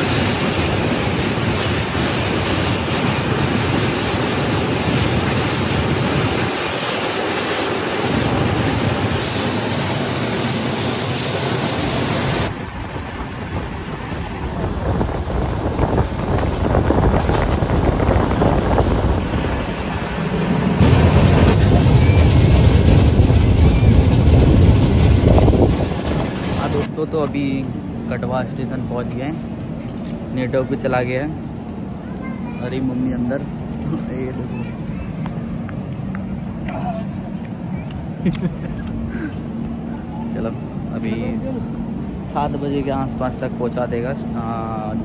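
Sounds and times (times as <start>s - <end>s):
wind buffeting microphone: 0.0s - 28.8s
passenger train running: 0.0s - 45.0s.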